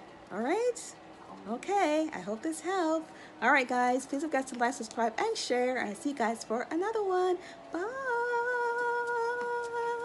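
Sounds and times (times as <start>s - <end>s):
woman singing long note: 7.7s - 10.0s.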